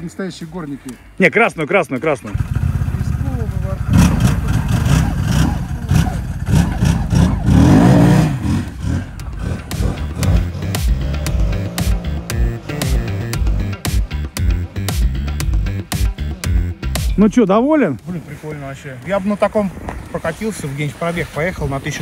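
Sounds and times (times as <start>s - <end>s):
snowmobile engine revving: 2.2s - 14.9s
music with steady beat: 7.1s - 18.1s.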